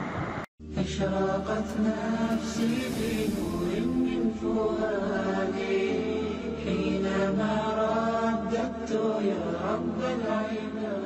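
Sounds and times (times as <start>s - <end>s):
steady low drone: 0.6s - 8.9s
sustained melodic chanting voice: 0.6s - 11.0s.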